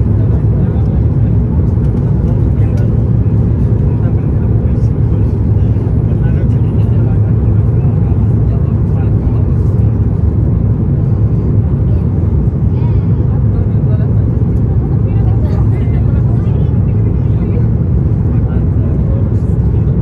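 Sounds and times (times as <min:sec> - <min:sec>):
jet engines and airflow rumble in cabin: 0:00.0 - 0:20.0.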